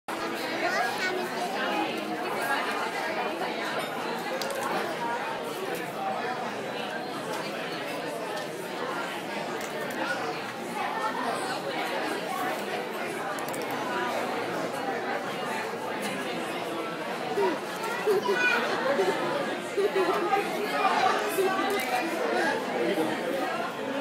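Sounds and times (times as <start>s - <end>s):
chatter of many diners: 0.1s - 24.0s.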